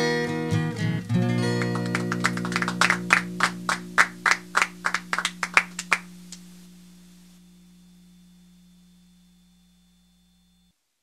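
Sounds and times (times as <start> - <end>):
acoustic guitar chord ringing: 0.0 - 9.6
hand claps: 1.1 - 6.5.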